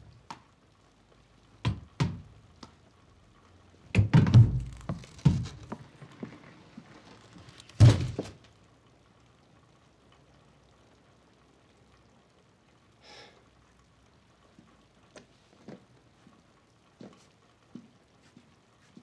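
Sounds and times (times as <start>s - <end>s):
soft rustle: 4.6s - 7.8s, 14.4s - 19.0s.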